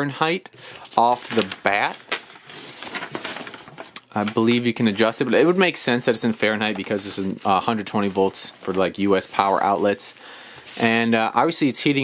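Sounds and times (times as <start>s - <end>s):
pages turning: 0.5s - 5.6s, 6.2s - 11.1s
paper rustling: 0.5s - 11.2s.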